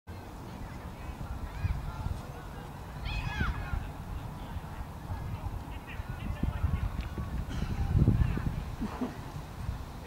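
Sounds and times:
wind on microphone: 0.6 - 10.0.

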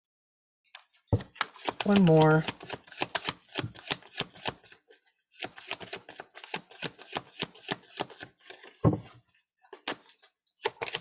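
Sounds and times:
cards being shuffled: 1.2 - 4.8, 5.4 - 8.8.

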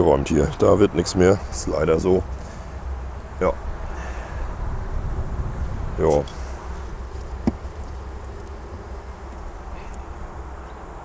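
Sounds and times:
honeybees humming: 0.0 - 11.0.

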